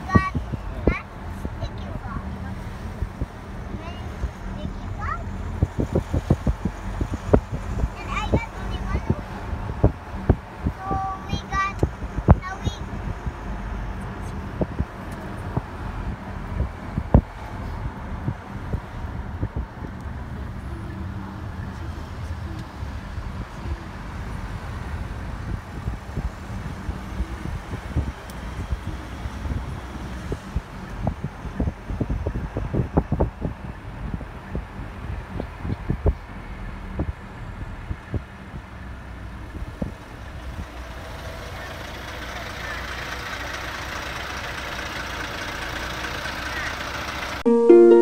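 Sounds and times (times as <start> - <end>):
car engine rumble and road noise: 0.0 - 47.9
traffic noise: 0.0 - 48.0.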